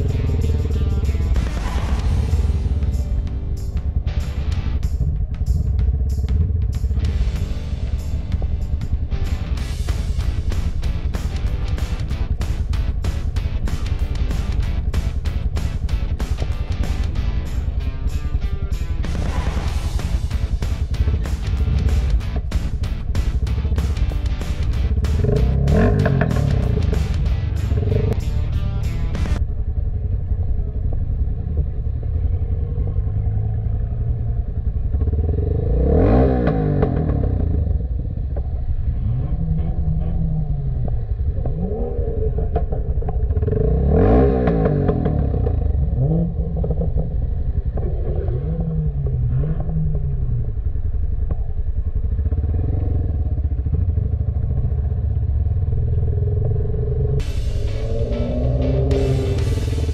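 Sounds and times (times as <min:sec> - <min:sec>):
music: 0:00.0 - 0:29.4, 0:57.2 - 0:59.9
motorcycle engine revving: 0:00.0 - 0:59.9.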